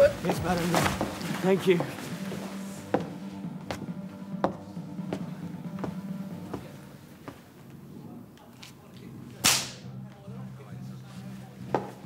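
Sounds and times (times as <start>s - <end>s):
whip crack: 9.4s - 9.8s
whip swish: 9.4s - 9.8s.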